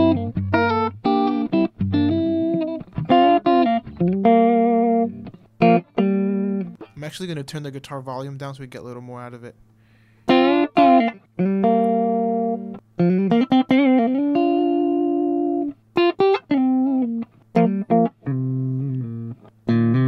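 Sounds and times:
clean electric guitar chords: 0.0 - 7.0, 10.3 - 20.0.

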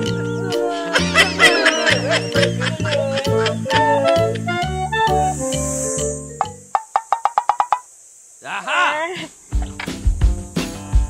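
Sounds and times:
man laughing: 0.6 - 4.6, 8.6 - 9.8
hollow wooden clicks: 6.4 - 7.9.

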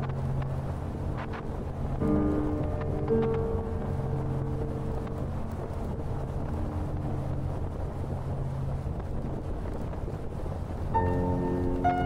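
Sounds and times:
motorcycle low rumble: 0.0 - 12.0
wind rushing over microphone: 0.0 - 12.0
background music: 1.8 - 8.4, 10.9 - 12.0.

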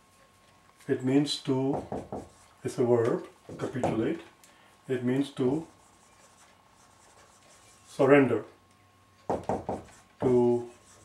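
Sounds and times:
thin steady hum: 0.0 - 11.0
marker strokes on whiteboard: 1.8 - 4.2, 5.0 - 8.3, 9.4 - 11.0.

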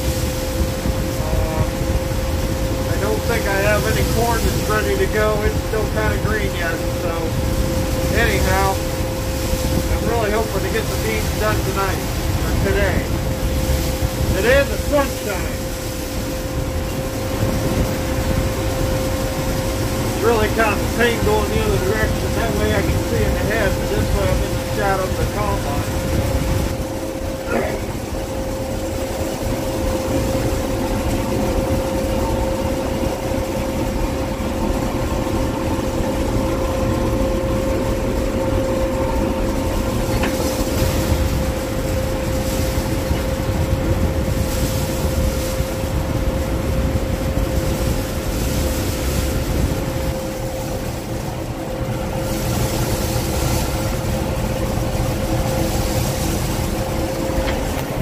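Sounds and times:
combine harvester rumble: 0.0 - 58.0
steady machine whine: 0.0 - 58.0.

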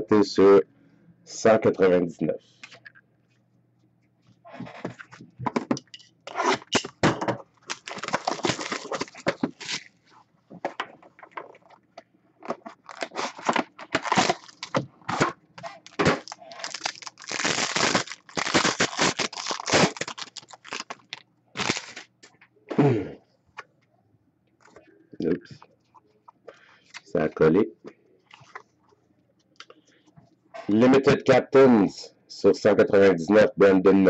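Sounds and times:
packaging crinkling and tearing: 7.6 - 10.0, 12.4 - 22.1.

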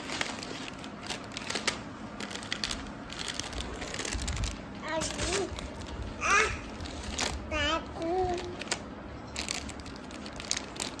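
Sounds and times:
plastic wrapper crinkling: 0.0 - 11.0.

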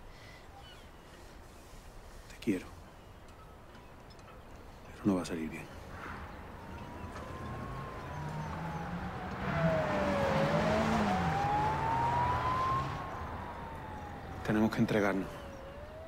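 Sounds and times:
car engine and tyre noise: 5.7 - 16.0
siren wailing: 6.2 - 16.0.

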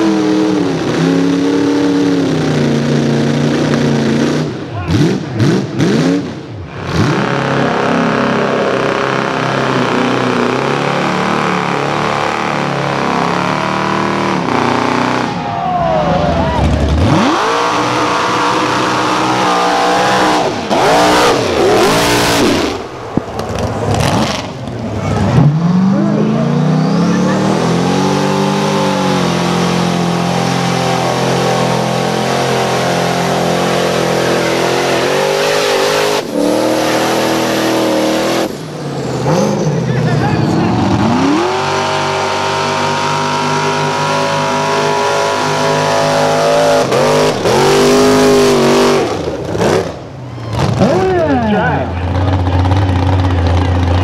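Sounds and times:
truck engines revving hard: 0.0 - 54.0.

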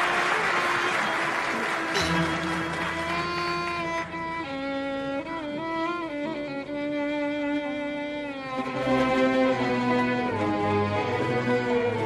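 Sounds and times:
lower strings playing: 2.0 - 12.0
violins playing sliding melody: 2.0 - 12.0.

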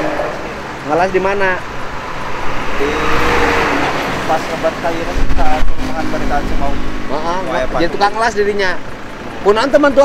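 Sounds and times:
road vehicle passing: 0.0 - 10.0.

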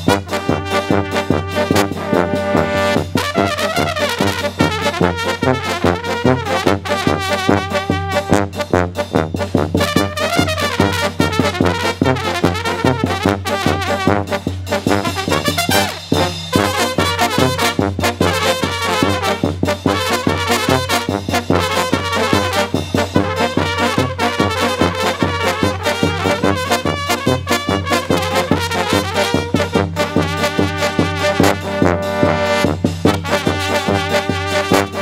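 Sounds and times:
brass band playing: 0.0 - 35.0.

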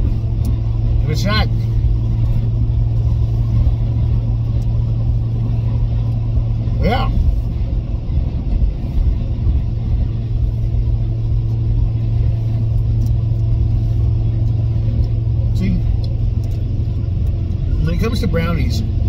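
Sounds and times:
car engine drone: 0.0 - 19.0
road noise: 0.0 - 19.0.

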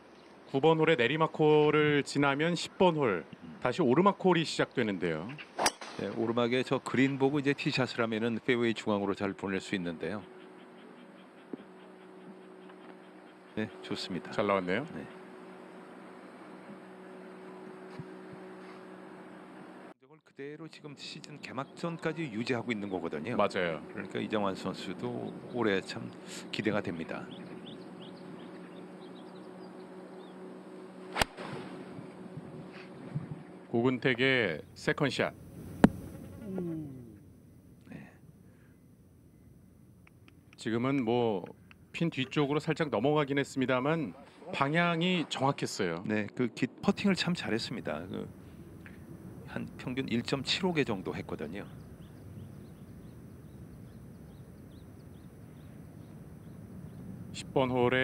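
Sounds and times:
low steady background hum: 0.0 - 58.0
golf club striking ball: 5.6 - 6.0, 31.1 - 32.0, 35.7 - 36.2
faint bird chirps: 6.9 - 15.8, 36.0 - 43.1, 47.4 - 57.9
faint high bird chirps: 48.9 - 57.2.

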